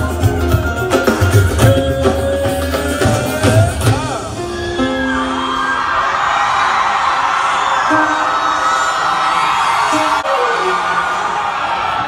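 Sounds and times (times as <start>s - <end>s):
live band playing: 0.0s - 6.0s, 7.8s - 12.0s
crowd cheering and whooping: 1.6s - 12.0s.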